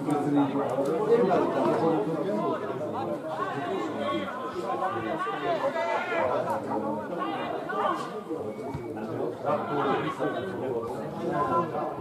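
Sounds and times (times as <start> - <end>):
men chattering: 0.0 - 12.0.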